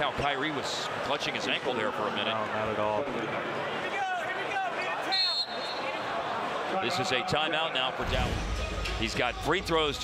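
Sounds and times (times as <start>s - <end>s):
arena crowd chatter: 0.0s - 10.0s
voices on the court: 0.0s - 10.0s
referee's whistle blast: 5.1s - 5.9s.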